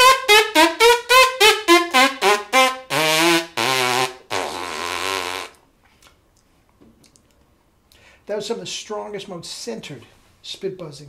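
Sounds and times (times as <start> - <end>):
trumpet player's lip buzzing: 0.0 - 5.6.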